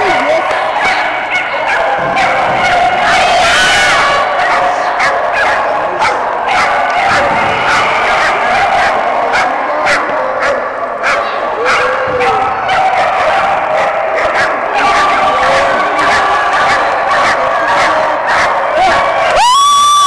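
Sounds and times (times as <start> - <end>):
dogs barking and yipping: 0.0 - 19.4
people's voices: 0.0 - 20.0.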